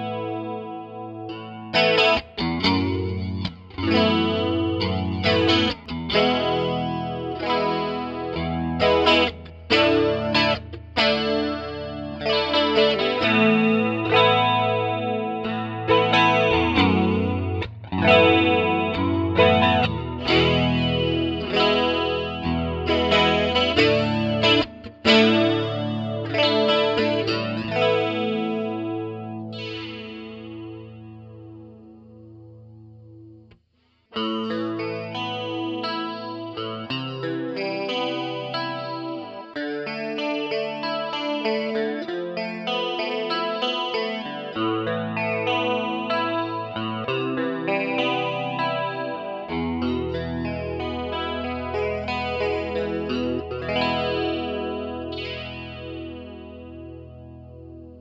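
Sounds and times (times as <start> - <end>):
electric guitar chords with chorus: 0.0 - 58.0.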